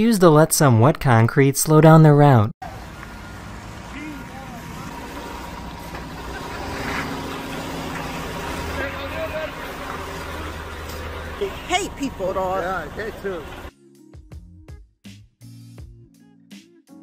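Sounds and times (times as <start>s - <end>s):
bus engine rumbling: 2.6s - 13.7s
faint voices: 3.8s - 13.7s.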